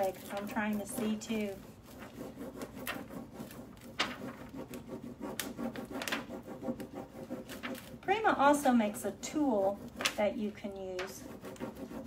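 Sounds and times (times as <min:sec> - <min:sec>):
dry rubbing and scratching: 0:00.0 - 0:12.0.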